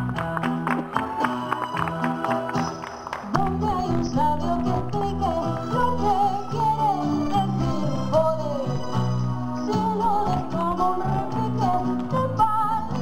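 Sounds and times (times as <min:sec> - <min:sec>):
woman singing flamenco-style: 0:03.2 - 0:08.8, 0:09.6 - 0:13.0.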